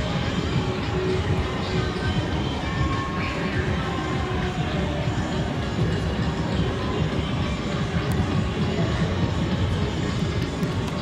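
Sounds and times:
faint music: 0.0s - 11.0s.

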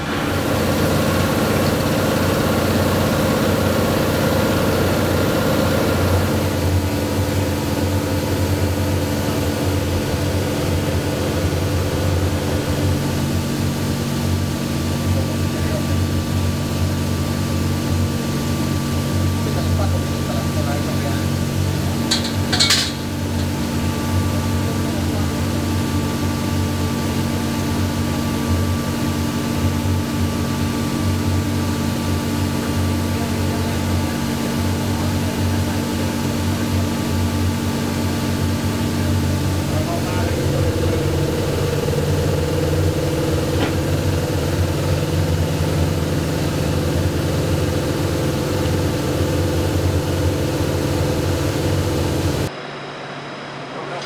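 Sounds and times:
machine hum and drone: 0.0s - 54.0s.

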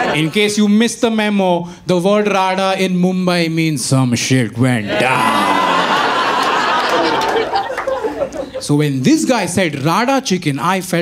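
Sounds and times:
audience laughter: 0.0s - 0.6s, 4.9s - 9.3s.

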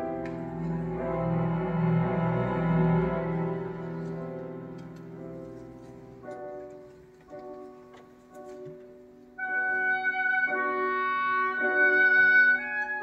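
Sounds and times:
orchestra playing: 0.0s - 6.8s, 9.4s - 13.0s.

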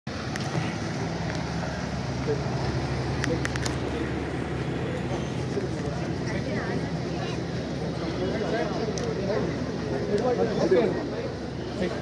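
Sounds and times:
car engine humming: 0.1s - 12.0s.

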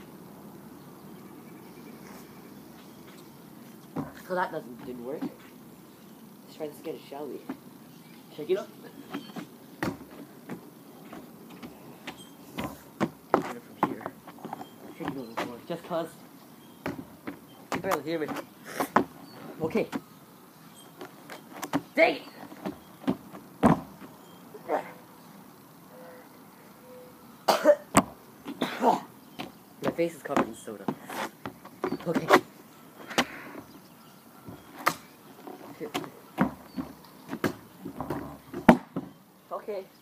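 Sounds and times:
soft footsteps on rubber track: 2.1s - 5.6s, 9.0s - 20.1s, 20.8s - 24.2s, 29.4s - 33.7s, 34.4s - 39.2s
person coughing and spluttering: 27.5s - 27.8s.

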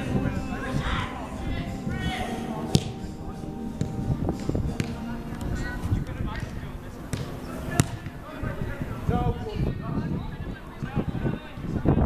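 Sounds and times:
distant voices: 0.0s - 12.0s
football kick thud: 2.7s - 3.0s, 7.1s - 8.2s.

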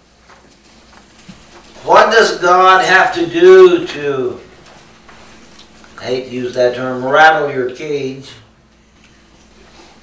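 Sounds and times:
man speaking: 1.8s - 4.5s, 6.0s - 8.5s.

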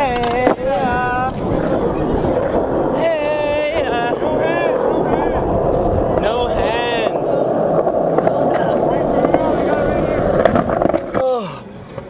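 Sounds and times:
skateboard wheels rolling on concrete: 0.0s - 12.0s.

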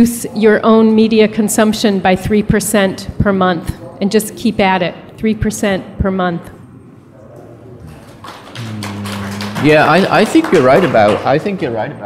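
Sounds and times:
man holding long uhh: 8.5s - 10.3s
man speaking: 8.6s - 12.0s.

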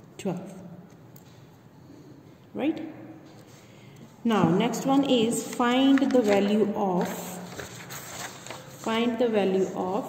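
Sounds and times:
paper pages rustling: 4.9s - 9.2s.

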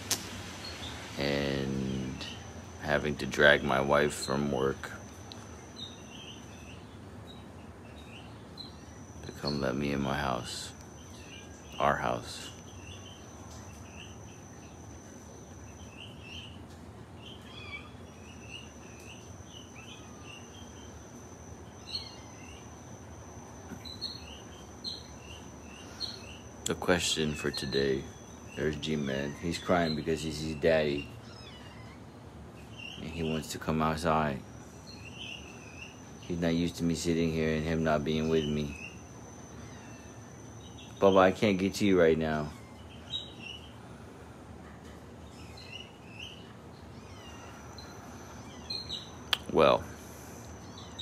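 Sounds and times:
crickets trilling: 0.0s - 44.6s, 45.2s - 51.0s.

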